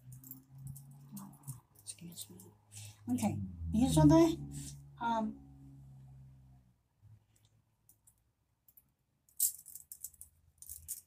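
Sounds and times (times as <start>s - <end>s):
metal pins clinking: 8.7s - 11.0s.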